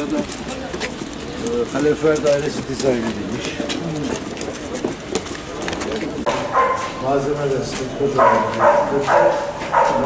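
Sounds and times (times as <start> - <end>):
men talking indistinctly: 1.3 - 10.0.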